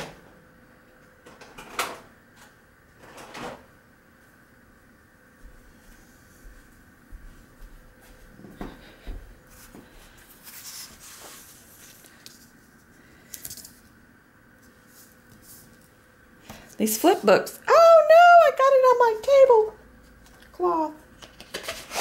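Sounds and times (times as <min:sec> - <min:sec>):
woman speaking: 0:16.8 - 0:19.8, 0:20.5 - 0:21.0.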